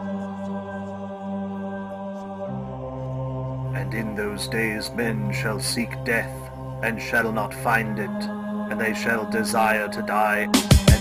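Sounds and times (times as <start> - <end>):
droning music chord: 0.0 - 11.0
man speaking: 3.8 - 11.0.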